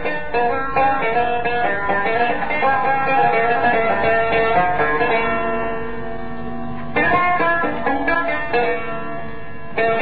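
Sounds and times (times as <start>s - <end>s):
plucked lute: 0.0s - 10.0s.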